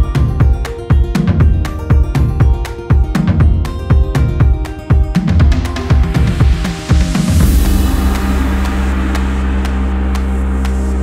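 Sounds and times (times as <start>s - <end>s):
low synth bass drone: 0.0s - 11.0s.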